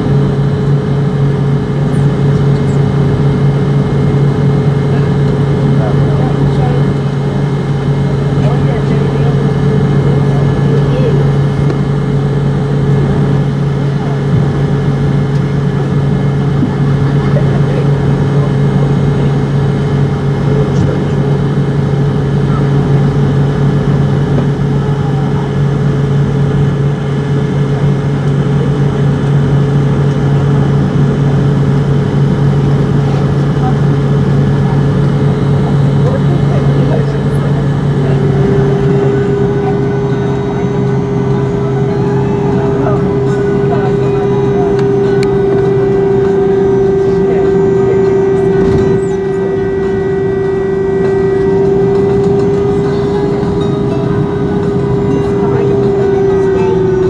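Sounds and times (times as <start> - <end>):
jet engines droning in cabin: 0.0 - 57.0.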